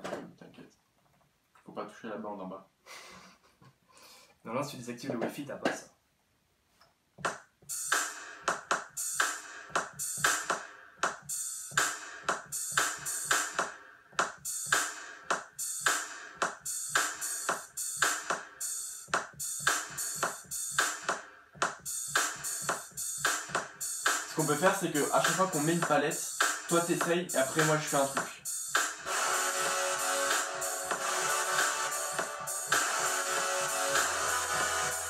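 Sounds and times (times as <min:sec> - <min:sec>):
drum machine beats: 0:07.2 - 0:35.0
synth melody: 0:29.0 - 0:35.0.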